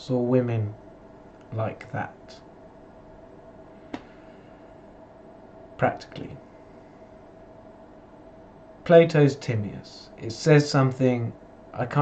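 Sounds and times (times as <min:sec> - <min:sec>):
man speaking: 0:00.0 - 0:00.8, 0:01.5 - 0:02.4, 0:05.8 - 0:06.4, 0:08.9 - 0:12.0
room tone hum: 0:00.0 - 0:12.0
thin constant tone: 0:00.0 - 0:12.0.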